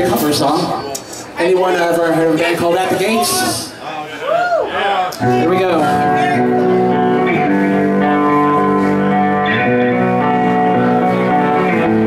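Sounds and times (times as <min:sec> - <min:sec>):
metal band electric guitar chords: 0:05.2 - 0:12.0.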